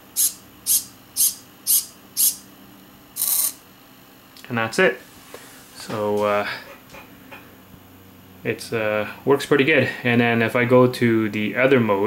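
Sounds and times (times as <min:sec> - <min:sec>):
servo motor whirring: 0:03.2 - 0:03.6.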